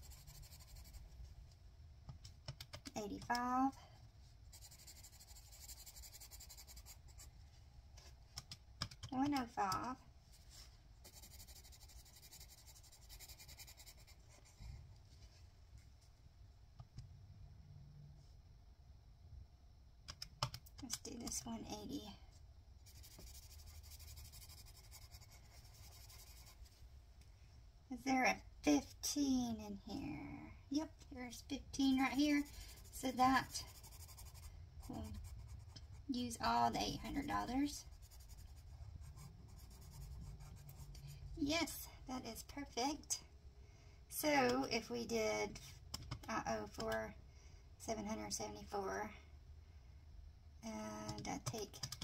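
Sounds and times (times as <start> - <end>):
pencil scratching on paper: 0.0 - 1.0, 4.5 - 7.3, 11.0 - 14.6, 22.8 - 26.7, 32.0 - 36.1, 37.0 - 41.2.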